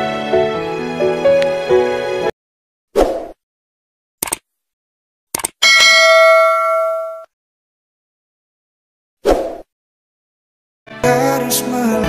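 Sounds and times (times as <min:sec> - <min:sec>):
mouse click: 0:04.2 - 0:04.4
bell chime: 0:05.6 - 0:07.3.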